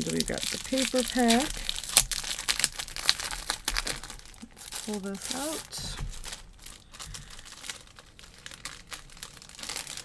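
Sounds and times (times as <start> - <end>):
plastic sleeve crinkling: 0.0 - 10.0.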